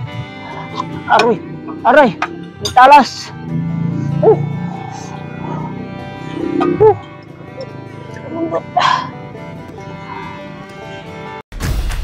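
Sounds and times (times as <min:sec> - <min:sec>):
background music: 0:00.0 - 0:12.0
dog yipping: 0:06.6 - 0:07.2.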